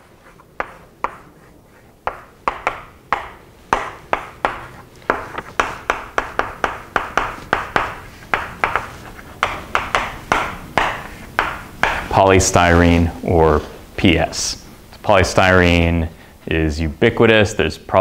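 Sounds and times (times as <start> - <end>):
chalk tapping and scraping on blackboard: 0.0 - 12.3.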